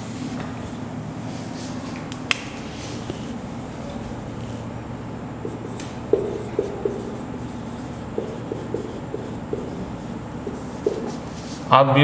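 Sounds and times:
steady low hum: 0:00.0 - 0:12.0
marker squeaking on whiteboard: 0:05.4 - 0:11.6.

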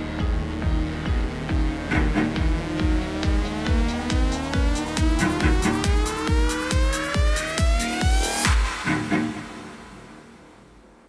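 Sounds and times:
kick drum: 0:00.0 - 0:09.4
rolling bassline: 0:00.0 - 0:10.9
rising synth sweep: 0:00.0 - 0:11.0.

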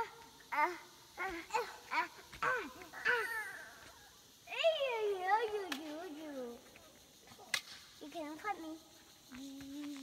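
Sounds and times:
child whining: 0:00.0 - 0:04.1.

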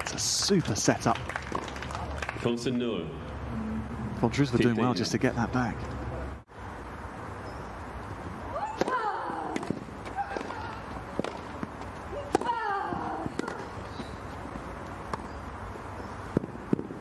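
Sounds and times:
racket hitting tennis ball: 0:08.6 - 0:14.1.

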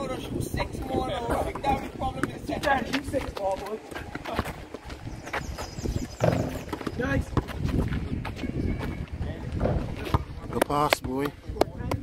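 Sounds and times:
basketball bouncing on concrete: 0:00.6 - 0:04.8, 0:06.2 - 0:08.9, 0:09.6 - 0:12.0.

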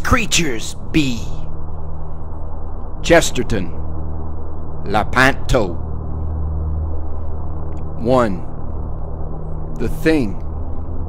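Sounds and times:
low droning tones: 0:00.0 - 0:11.0.

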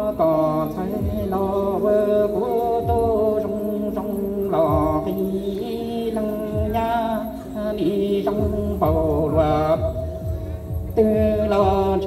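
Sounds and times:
backing track with slow low beat: 0:00.0 - 0:12.0
man singing through a microphone: 0:00.0 - 0:12.0.

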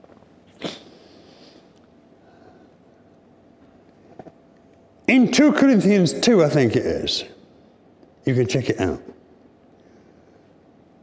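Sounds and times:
man sniffing: 0:00.6 - 0:01.5.

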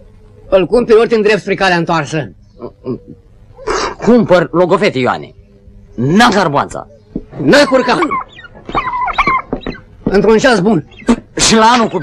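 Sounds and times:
turkey gobbling: 0:06.9 - 0:12.0.

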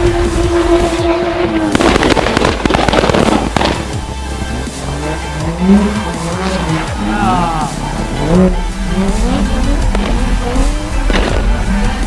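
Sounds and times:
car exhaust pops and crackles: 0:00.0 - 0:05.1, 0:09.0 - 0:12.0.

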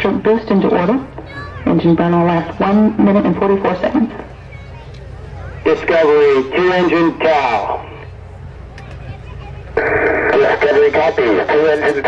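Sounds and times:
low outdoor rumble: 0:00.0 - 0:12.0
voice over loudspeaker: 0:05.6 - 0:08.0, 0:09.8 - 0:12.0.

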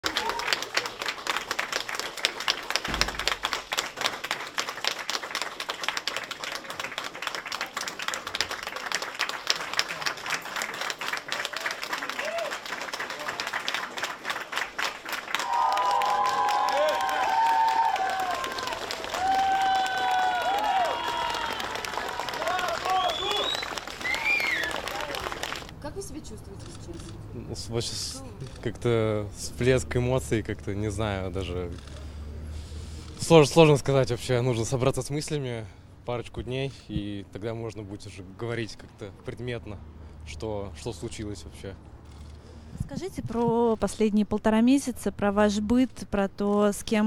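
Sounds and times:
crowd applauding: 0:00.0 - 0:25.7.

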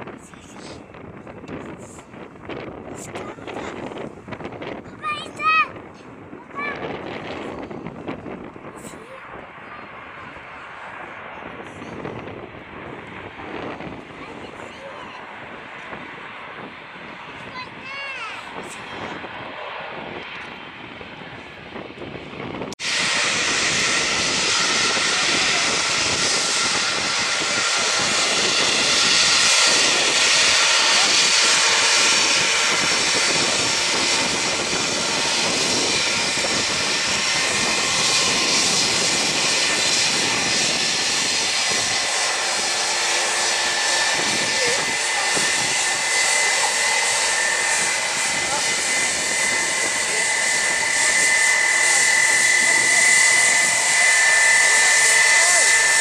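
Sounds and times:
high jet engine whine: 0:00.0 - 0:56.0
jet engines rushing: 0:00.0 - 0:56.0.

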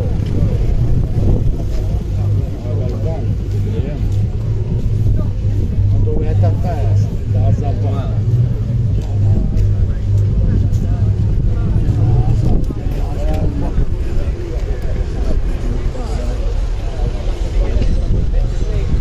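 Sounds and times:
car engine running: 0:00.0 - 0:18.2
people chattering: 0:00.0 - 0:19.0.

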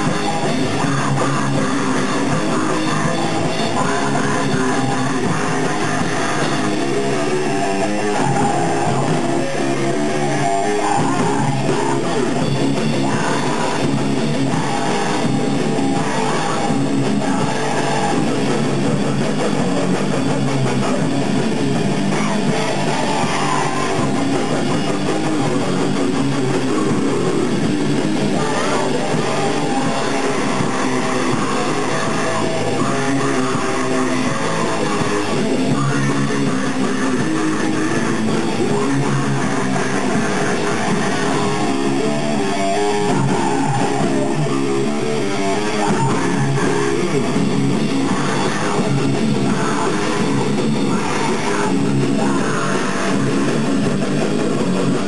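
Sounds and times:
electric guitar: 0:00.0 - 0:55.0
live metal band playing: 0:00.0 - 0:55.0.

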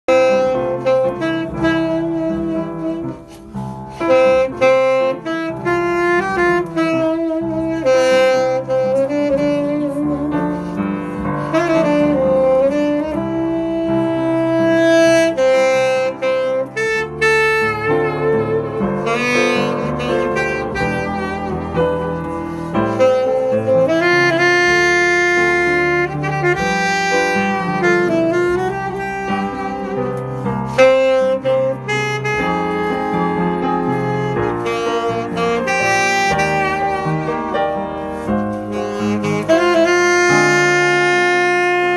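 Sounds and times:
saxophone jazz melody: 0:00.0 - 0:41.9.

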